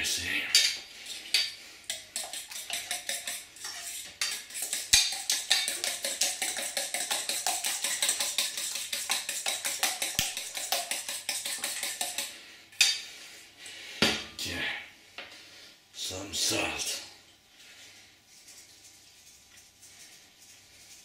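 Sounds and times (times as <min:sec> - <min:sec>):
whisk clinking in metal bowl: 0:00.6 - 0:13.0.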